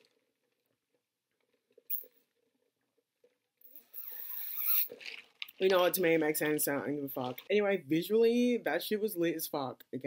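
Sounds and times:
sucking through a straw: 3.9 - 5.2
slurping through a straw: 3.9 - 5.6.

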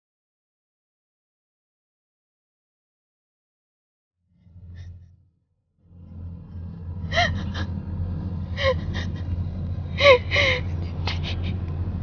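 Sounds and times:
steady low rumble: 4.2 - 12.0.

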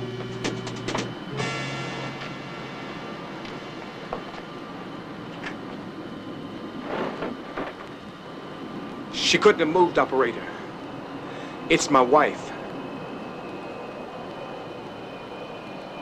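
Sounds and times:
steady background rumble: 0.0 - 16.0
held music chord: 1.2 - 5.3.

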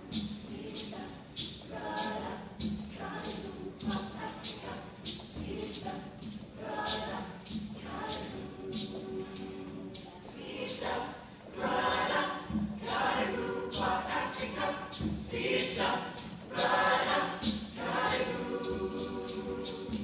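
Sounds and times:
youth choir singing: 0.0 - 20.0.

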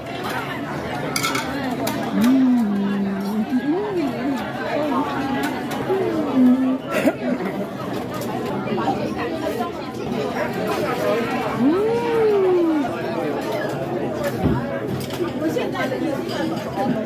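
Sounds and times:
chatter of many diners: 0.0 - 17.0
nearby voice: 2.1 - 4.4.

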